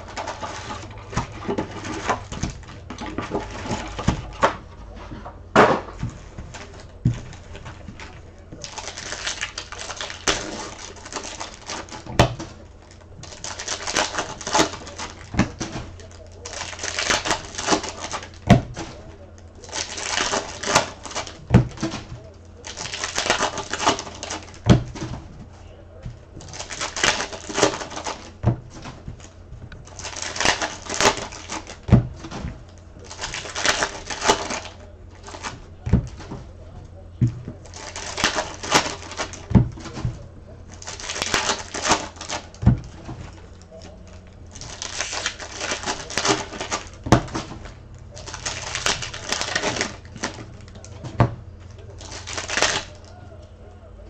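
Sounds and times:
foil wrappers tearing and crinkling: 0.0s - 4.6s, 5.6s - 25.3s, 26.2s - 36.5s, 37.4s - 53.2s.

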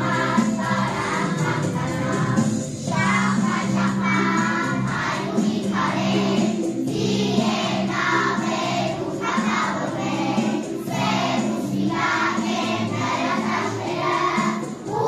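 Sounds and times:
children singing in chorus: 0.0s - 15.0s
musical accompaniment: 0.0s - 15.0s.

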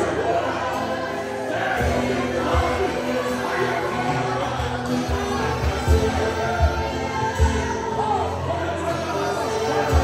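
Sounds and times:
choir singing: 0.0s - 10.0s
gospel band playing: 0.0s - 10.0s.

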